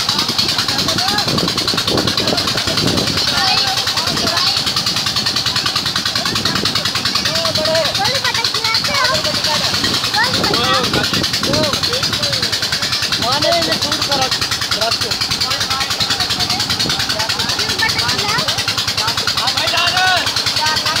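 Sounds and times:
water jet splashing into pool: 0.0 - 21.0.

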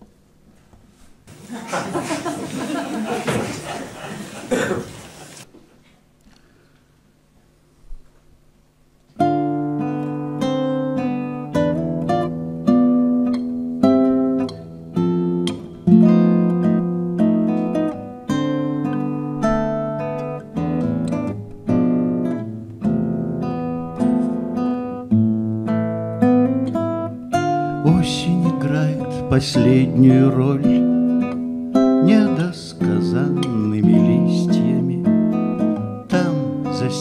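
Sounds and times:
fingerpicked acoustic guitar: 9.1 - 37.0.

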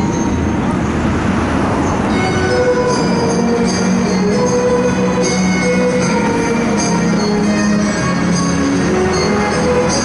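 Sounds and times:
distant traffic and crowd: 0.0 - 10.0
faint music: 0.0 - 10.0.

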